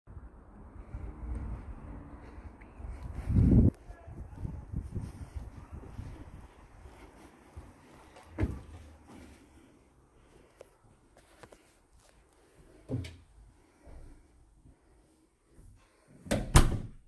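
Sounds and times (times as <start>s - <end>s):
footsteps: 0.6s - 14.9s.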